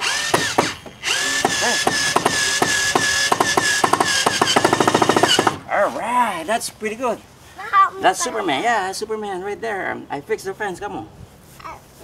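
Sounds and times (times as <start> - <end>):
cordless drill whining: 0.0 - 5.6.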